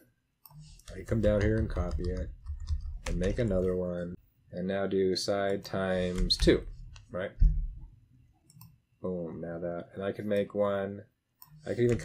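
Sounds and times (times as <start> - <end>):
short low thump: 7.4 - 7.8
computer mouse click: 8.4 - 8.8.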